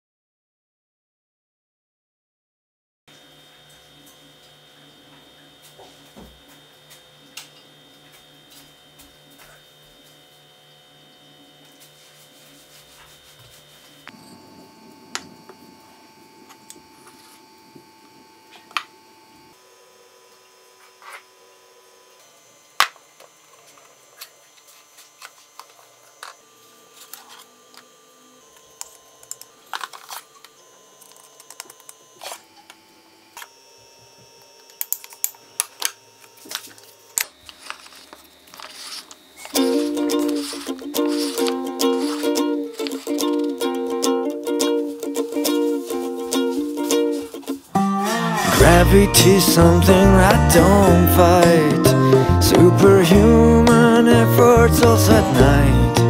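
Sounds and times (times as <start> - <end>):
faint pulsing electrical hum: 3.1 - 56.0.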